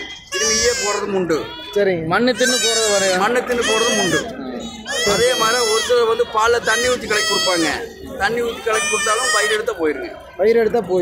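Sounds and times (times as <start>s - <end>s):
goat kid bleating: 0.0s - 7.8s, 8.4s - 9.7s
man talking: 0.4s - 11.0s.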